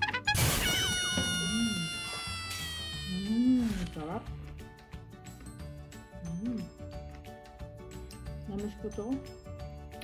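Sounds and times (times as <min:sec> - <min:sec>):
woman humming while eating: 0:06.2 - 0:06.8.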